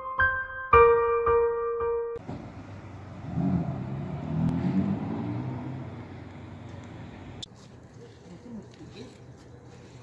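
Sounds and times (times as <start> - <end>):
car passing by: 2.2 - 7.4
street noise: 2.2 - 10.0.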